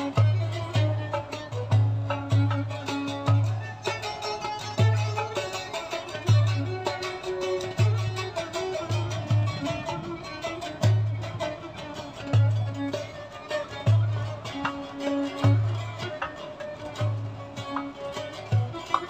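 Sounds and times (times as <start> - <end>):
folk tune on violin and lute: 0.0 - 19.0
goblet drum strokes: 0.0 - 19.0.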